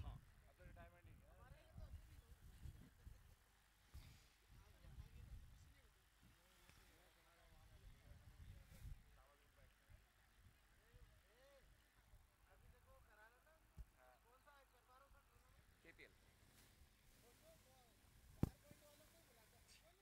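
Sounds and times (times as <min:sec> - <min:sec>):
faint distant voices: 0:00.0 - 0:20.0.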